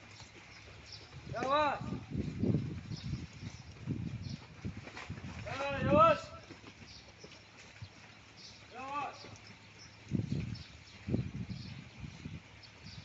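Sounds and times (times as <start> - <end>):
cow hooves on concrete: 0.0 - 13.0.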